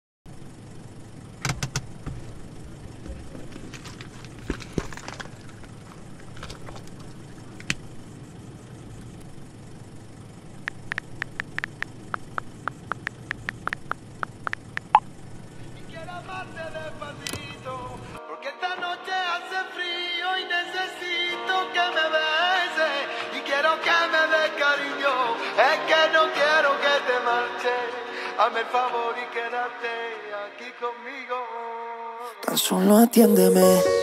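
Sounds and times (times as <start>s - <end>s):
low rumble in car cabin: 0.3s - 18.2s
quick clicks: 10.7s - 15.0s.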